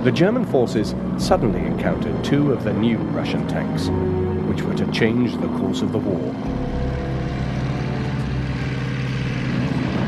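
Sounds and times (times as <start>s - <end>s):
tank engine running: 0.0s - 10.0s.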